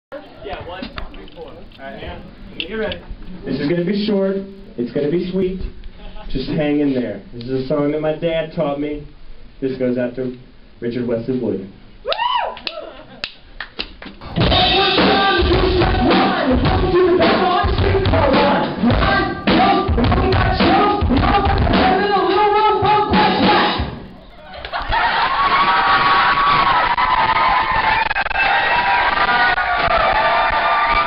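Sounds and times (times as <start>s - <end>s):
person whooping: 12.0s - 13.2s
live rock band: 14.2s - 24.2s.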